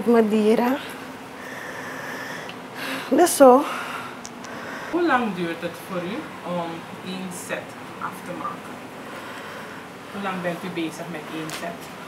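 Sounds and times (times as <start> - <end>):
person breathing in: 1.4 - 5.0.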